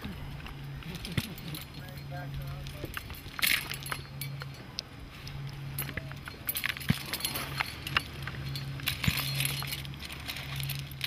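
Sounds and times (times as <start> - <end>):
carabiners clinking: 0.0 - 11.0
low hum: 0.0 - 11.0.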